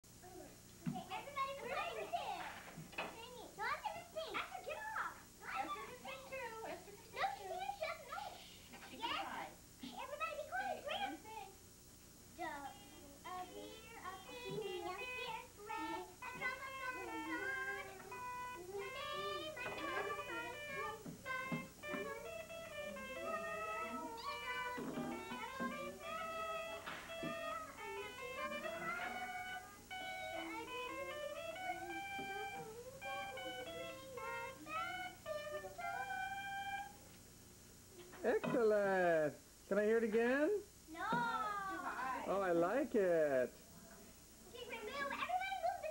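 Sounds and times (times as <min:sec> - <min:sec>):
girl singing unaccompanied: 0:12.4 - 0:37.0.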